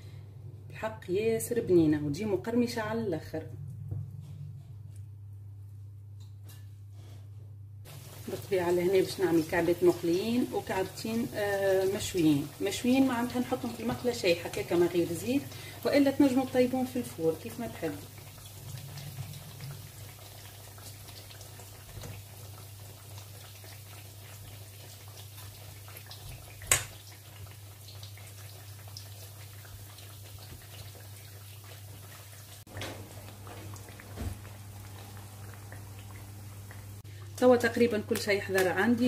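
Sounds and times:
steady low hum: 0:00.0 - 0:08.4.

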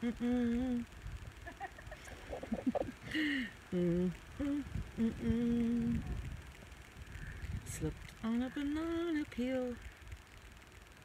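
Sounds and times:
person humming: 0:00.0 - 0:00.9, 0:02.0 - 0:06.3.

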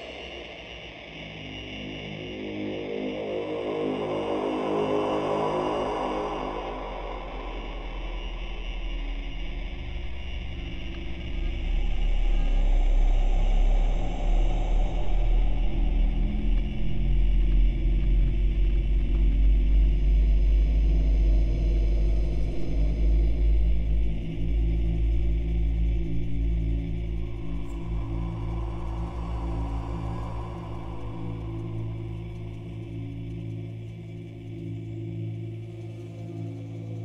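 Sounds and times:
dark ambient drone music: 0:00.0 - 0:37.0.

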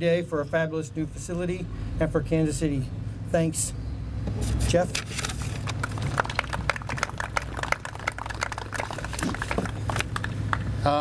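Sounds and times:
people clapping: 0:05.6 - 0:10.8.

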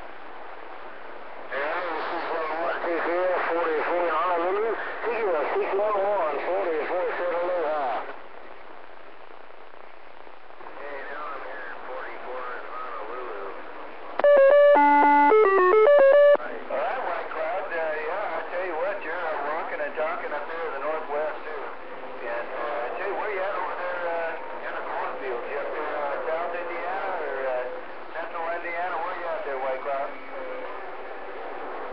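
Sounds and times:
voice over radio speaker: 0:10.8 - 0:13.6
stepped electronic beeps: 0:14.2 - 0:16.4.

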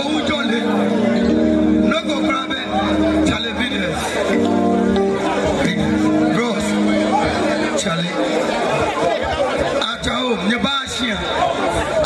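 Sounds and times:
voices chattering: 0:00.0 - 0:12.0.

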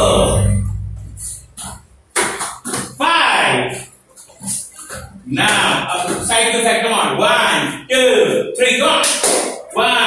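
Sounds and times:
indistinct voices: 0:00.0 - 0:01.8
short knocks or slaps: 0:01.6 - 0:03.0.

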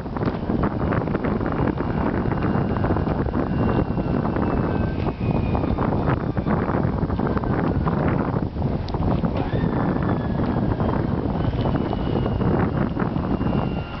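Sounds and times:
faint thin whine: 0:00.0 - 0:14.0
wind buffeting microphone: 0:00.0 - 0:14.0.

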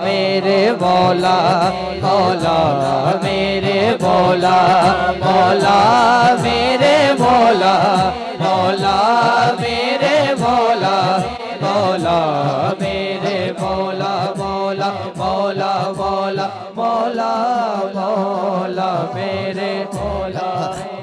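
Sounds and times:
low drone of chanting voices: 0:00.0 - 0:21.0
man singing: 0:00.0 - 0:21.0.

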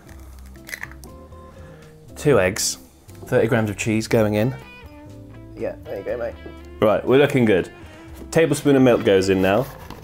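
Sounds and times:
egg cracking and squishing: 0:00.0 - 0:01.1
soft background music: 0:00.0 - 0:10.0.

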